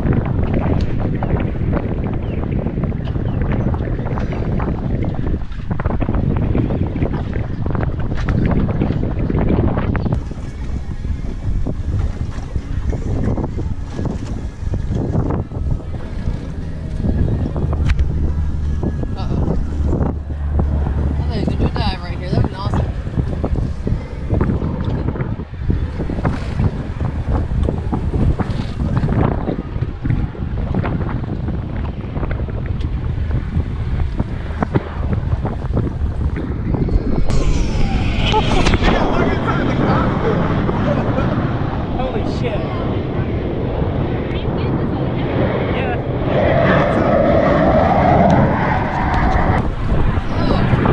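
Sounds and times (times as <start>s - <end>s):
wind buffeting microphone: 0.0s - 50.9s
jet passing overhead: 8.9s - 50.9s.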